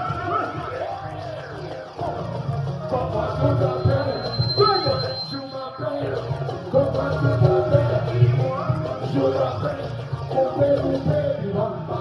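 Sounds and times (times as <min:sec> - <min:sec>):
amplified live band music: 0:00.0 - 0:12.0.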